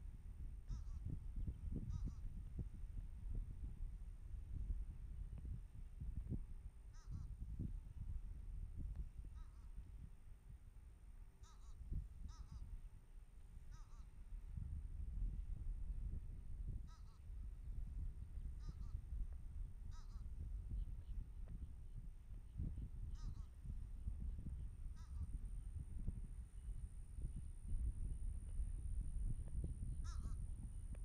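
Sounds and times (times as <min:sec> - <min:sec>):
wind rumbling on microphone: 0:00.0 - 0:31.0
honking bird calls: 0:30.0 - 0:30.4.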